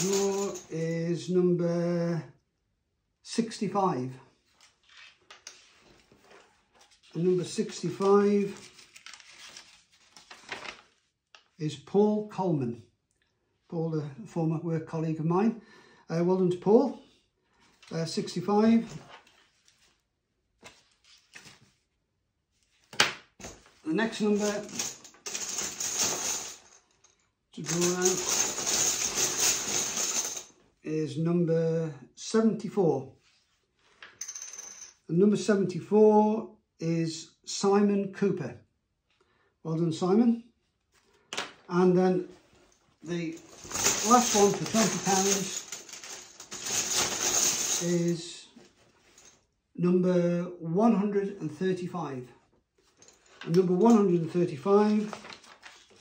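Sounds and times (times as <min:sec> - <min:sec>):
paper rustling: 0:04.5 - 0:11.5, 0:20.6 - 0:21.8, 0:43.4 - 0:47.8, 0:54.8 - 0:56.0.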